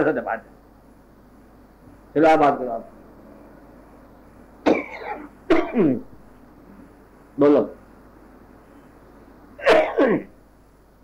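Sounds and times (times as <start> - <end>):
person coughing: 4.6 - 6.0, 9.6 - 10.3.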